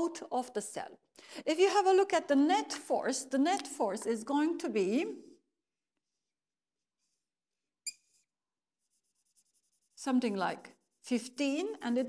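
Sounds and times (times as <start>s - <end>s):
marker scratching strokes: 7.0s - 12.0s
marker squeaking on whiteboard: 7.8s - 10.0s.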